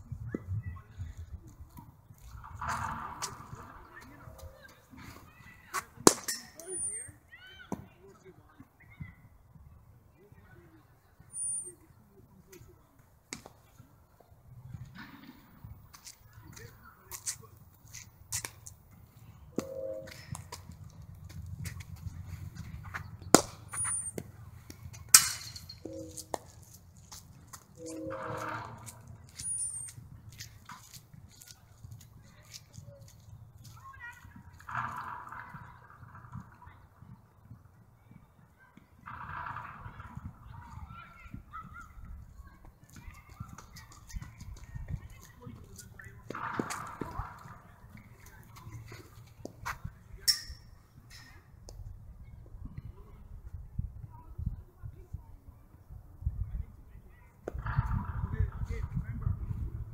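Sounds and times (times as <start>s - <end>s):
high bird chirps: 11.2s - 11.9s, 19.1s - 20.5s, 22.9s - 24.2s, 25.7s - 26.4s, 29.2s - 30.0s
steady low rumble: 17.8s - 31.2s
cricket ball being struck: 23.3s - 24.3s.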